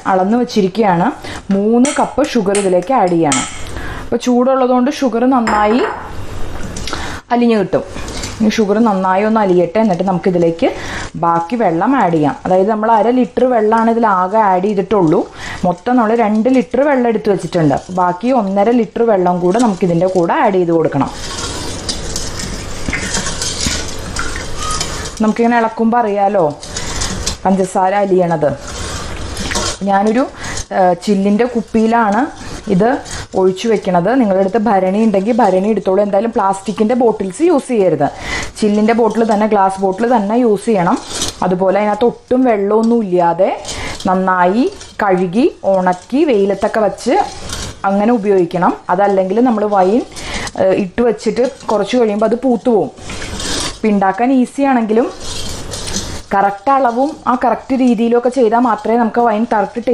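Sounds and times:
woman speaking: 0.0s - 3.5s, 4.1s - 6.1s, 7.3s - 21.2s, 25.2s - 26.6s, 27.4s - 28.6s, 29.8s - 53.0s, 53.8s - 55.2s, 56.3s - 59.9s
glass bowl clinking on steel pot: 5.5s - 6.1s
spatula stirring liquid in bowl: 7.9s - 59.9s
sugar pouring into liquid: 19.6s - 25.4s.

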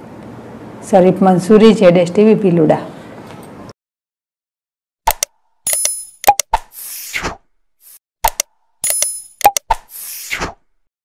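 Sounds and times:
sharp mouse clicks: 5.1s - 7.0s, 8.2s - 10.5s.

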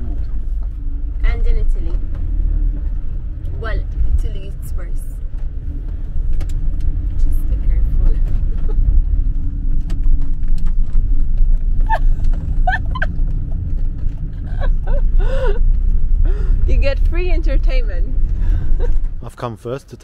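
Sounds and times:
engine and road rumble: 0.0s - 20.0s.

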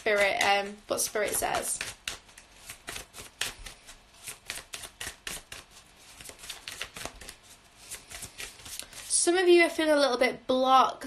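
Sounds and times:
cards being shuffled: 0.0s - 9.2s.

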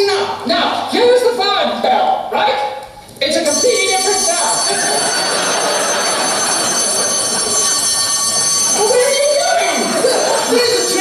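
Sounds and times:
electric alarm bell ringing: 3.4s - 11.0s.

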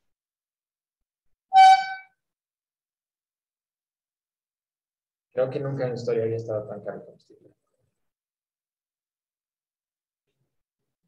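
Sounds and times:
short loud beep: 1.5s - 2.1s.

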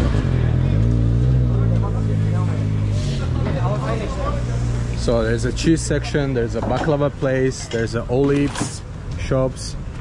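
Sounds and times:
engine droning: 0.0s - 8.0s.

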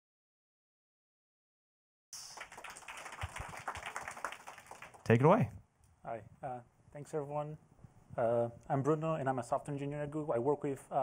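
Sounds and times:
scattered clapping: 2.2s - 5.4s.

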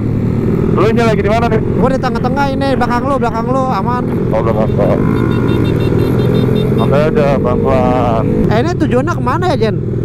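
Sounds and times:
motorcycle engine running: 0.0s - 10.0s
person speaking: 0.8s - 5.2s.

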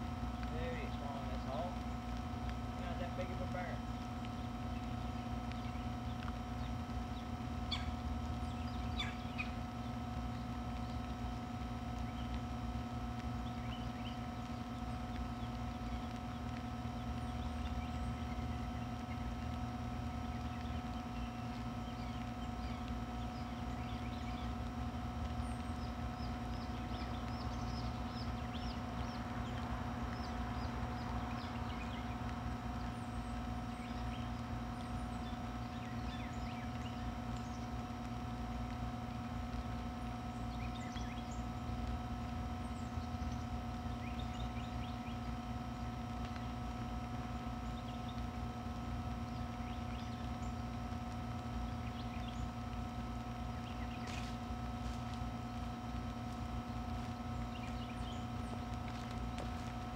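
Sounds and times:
mechanical hum with low rumble: 0.0s - 59.9s
faint bird chirps: 2.8s - 11.1s.

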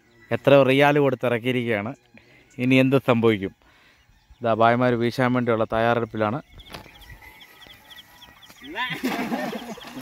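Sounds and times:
net splashing into water: 8.9s - 10.0s.

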